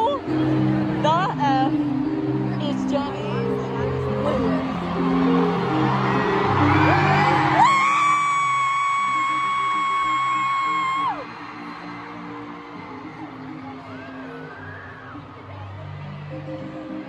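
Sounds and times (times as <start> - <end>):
music over sound system: 0.0 - 17.0.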